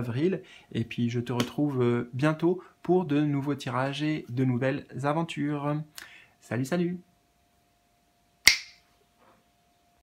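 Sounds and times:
finger snap: 0:08.5 - 0:08.8.

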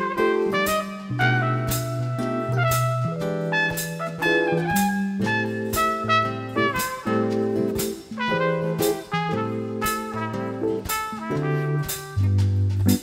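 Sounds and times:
small band accompaniment: 0:00.0 - 0:13.0
trumpet jazz solo: 0:00.0 - 0:13.0.

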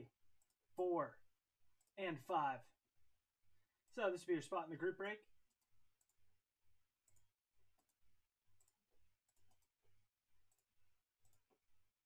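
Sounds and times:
computer mouse clicking: 0:05.5 - 0:06.2, 0:07.0 - 0:09.8, 0:10.5 - 0:11.6.

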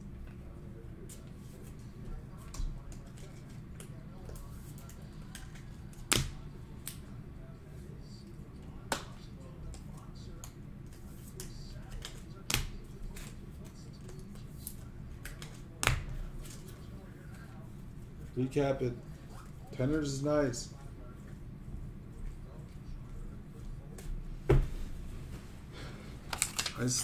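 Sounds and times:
low steady hum: 0:00.0 - 0:27.0
cards and plastic holders handled: 0:01.1 - 0:07.0, 0:08.9 - 0:17.6, 0:26.3 - 0:27.0.

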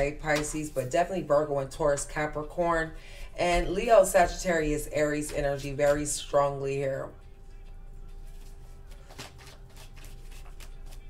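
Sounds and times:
cards being shuffled: 0:08.1 - 0:11.0.

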